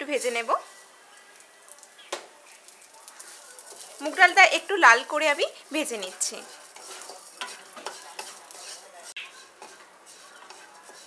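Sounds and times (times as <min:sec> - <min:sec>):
gritty rustle of roasting grains: 0:00.0 - 0:11.0
spatula scraping pan: 0:02.6 - 0:11.0.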